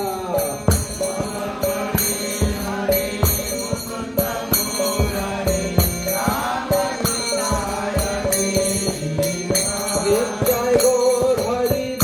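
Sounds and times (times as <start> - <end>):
hand cymbals striking: 0.0 - 12.0
man chanting: 0.0 - 12.0.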